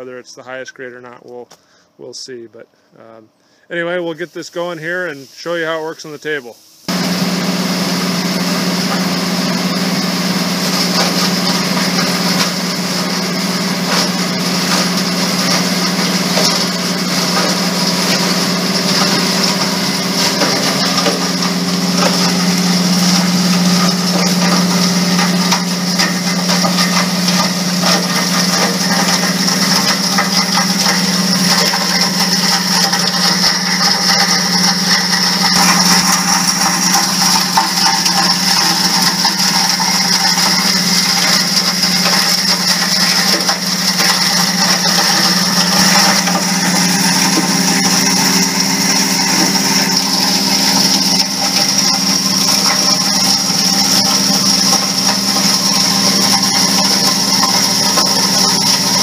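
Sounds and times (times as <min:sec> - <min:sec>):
hammer mill crushing circuit boards: 0:06.9 - 0:59.0
shaker table working: 0:06.9 - 0:59.0.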